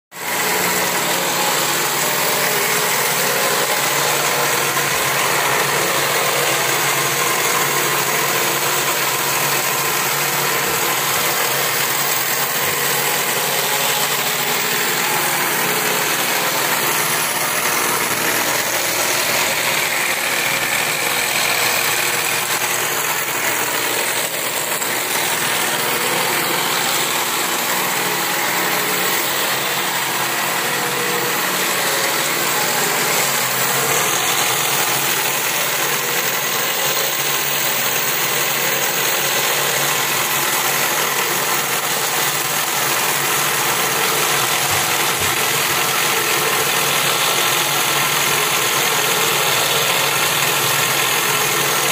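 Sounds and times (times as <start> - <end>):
cord-making machine humming and rattling: 0.1 - 51.9.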